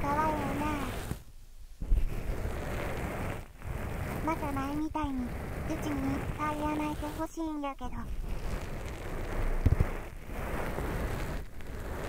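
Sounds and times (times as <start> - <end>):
low bumps: 0.0 - 12.0
wet tissue rustling on microphone: 0.0 - 12.0.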